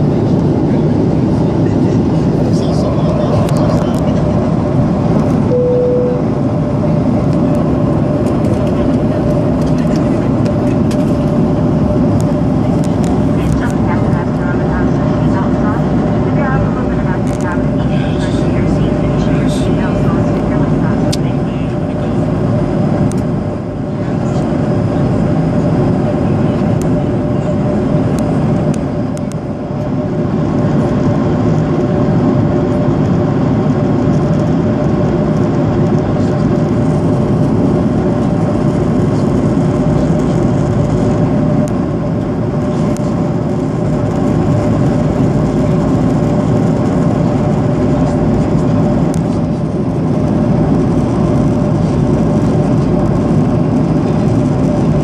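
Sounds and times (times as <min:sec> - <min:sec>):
airplane cabin engine drone: 0:00.0 - 0:55.0
brief cabin tone: 0:05.5 - 0:06.5.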